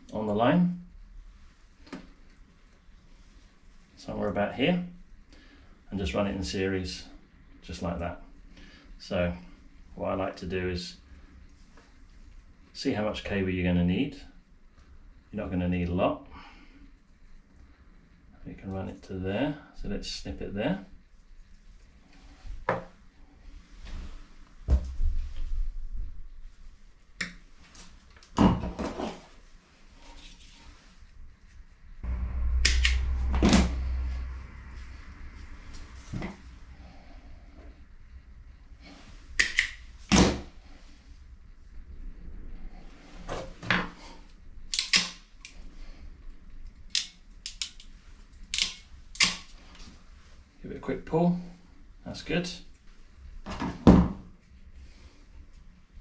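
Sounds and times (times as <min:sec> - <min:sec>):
low rumbling thud: 0:32.0 - 0:36.6
wire cutters snipping: 0:44.7 - 0:45.6.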